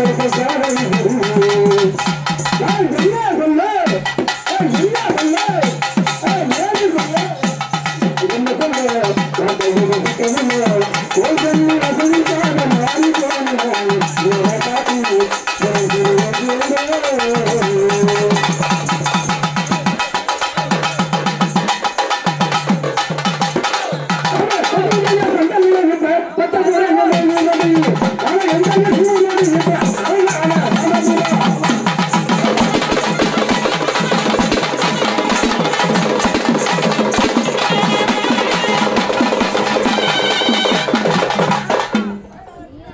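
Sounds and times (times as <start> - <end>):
barrel drums played with sticks: 0.0 - 25.8, 27.0 - 42.2.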